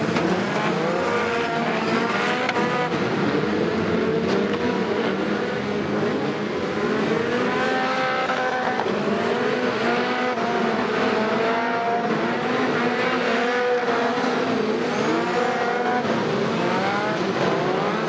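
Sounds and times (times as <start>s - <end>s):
racing car engines revving: 0.0s - 18.0s.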